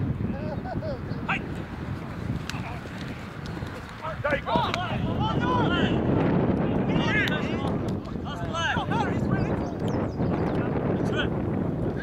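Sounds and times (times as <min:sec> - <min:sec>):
wind buffeting microphone: 0:00.0 - 0:12.0
distant shouts: 0:01.2 - 0:01.8.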